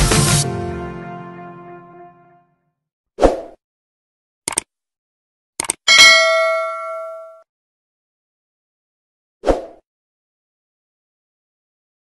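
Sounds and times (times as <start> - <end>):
bright bell ding: 5.9 - 7.4.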